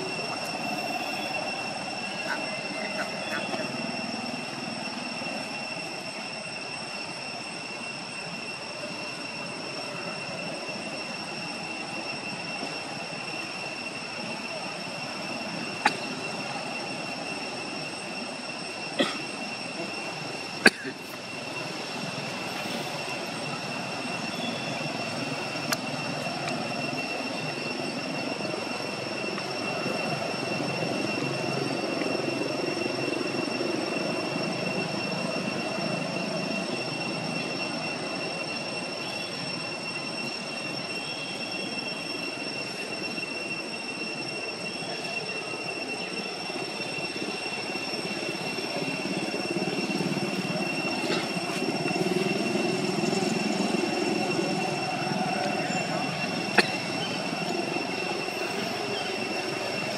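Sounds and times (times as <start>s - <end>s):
high-pitched whine: 0.0s - 59.9s.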